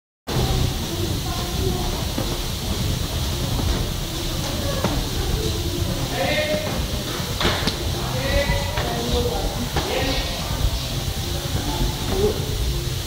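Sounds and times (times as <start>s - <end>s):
low room rumble: 0.3s - 13.0s.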